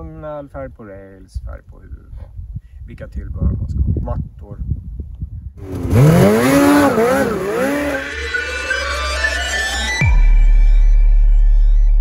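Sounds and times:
snowmobile engine revving: 5.6 - 8.8.

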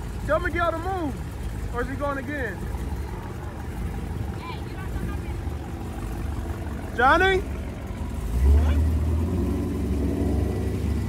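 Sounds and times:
faint voices: 0.0 - 9.2
car engines idling: 0.0 - 11.0.

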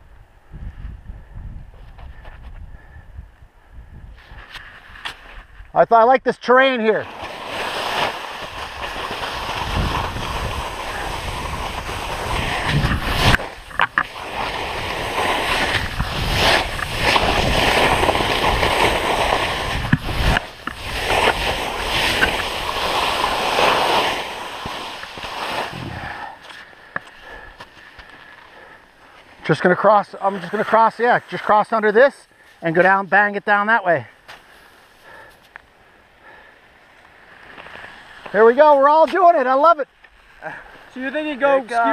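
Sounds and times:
wind on microphone: 0.0 - 5.7, 8.4 - 23.7, 25.6 - 26.4
skis scraping on snow: 6.7 - 35.6, 36.2 - 41.9.

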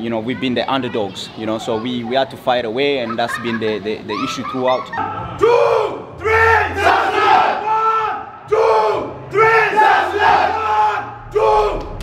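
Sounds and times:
team shouting chant in unison: 5.0 - 12.0.

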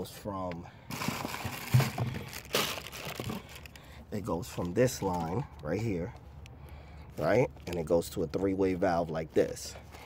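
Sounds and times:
cardboard box rustling: 0.9 - 3.7.

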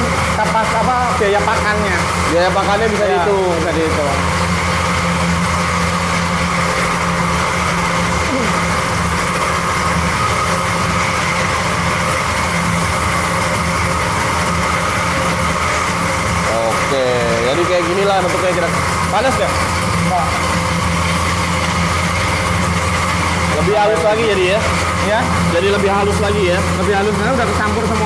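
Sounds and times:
feed mixing machine humming: 0.0 - 28.0.

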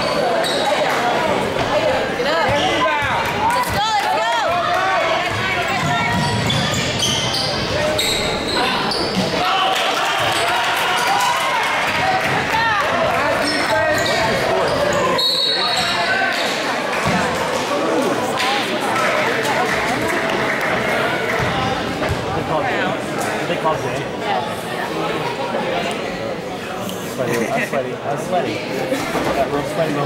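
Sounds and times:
chatter of spectators: 0.0 - 30.0.

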